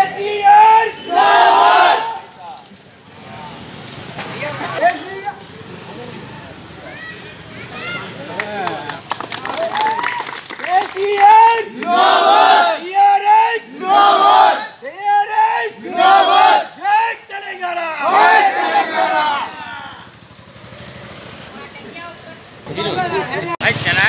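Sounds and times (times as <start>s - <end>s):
men chanting in unison: 11.8s - 12.8s, 13.7s - 14.6s, 15.7s - 16.8s.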